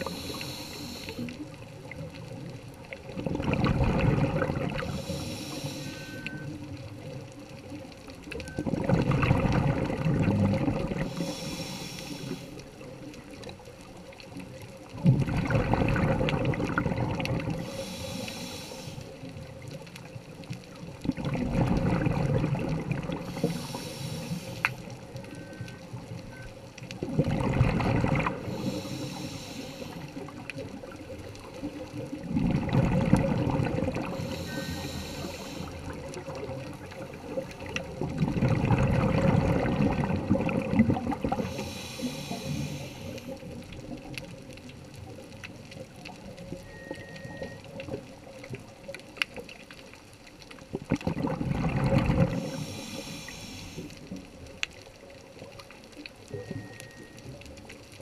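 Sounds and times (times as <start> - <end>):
regulator inhale hiss: 0.0 - 1.6, 4.7 - 6.6, 11.0 - 12.8, 17.5 - 19.4, 23.2 - 25.6, 28.4 - 30.4, 34.0 - 36.1, 41.3 - 43.6, 52.3 - 54.2
exhaled bubbling rumble: 1.8 - 5.0, 8.6 - 11.2, 14.7 - 17.7, 20.8 - 23.7, 26.9 - 28.6, 30.2 - 34.4, 35.8 - 41.6, 50.6 - 52.6.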